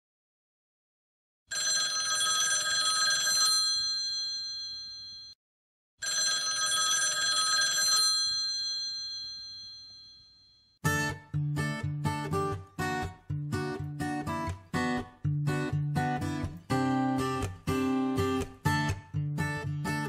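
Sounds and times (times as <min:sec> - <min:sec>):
bell ringing: 0:03.5 - 0:05.4, 0:06.0 - 0:10.7.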